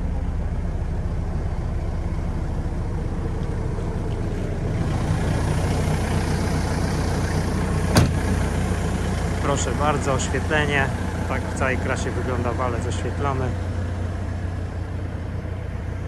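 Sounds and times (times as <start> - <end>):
diesel engine idling: 0.0 - 16.0.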